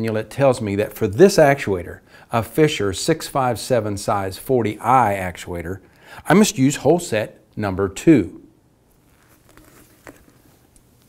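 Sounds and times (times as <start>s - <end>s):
soft handling rustling: 8.9s - 11.0s.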